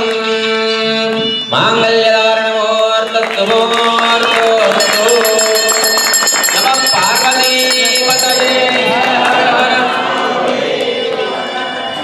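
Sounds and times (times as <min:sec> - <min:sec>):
voices singing a devotional chant: 0:00.0 - 0:12.0.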